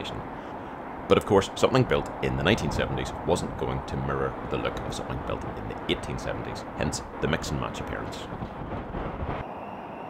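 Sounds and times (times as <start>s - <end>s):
road traffic rush: 0.0s - 10.0s
wind on microphone: 2.1s - 10.0s.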